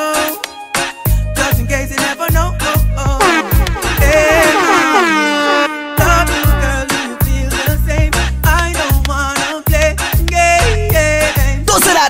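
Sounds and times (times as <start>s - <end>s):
dancehall beat with bass and drums: 0.0s - 12.0s
air horn blast falling in pitch: 3.2s - 8.0s.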